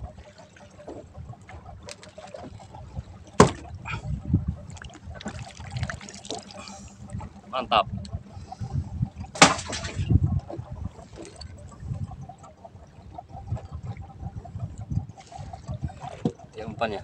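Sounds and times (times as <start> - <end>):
water slapping against boat hull: 0.0 - 8.2, 9.0 - 12.0, 13.0 - 17.0.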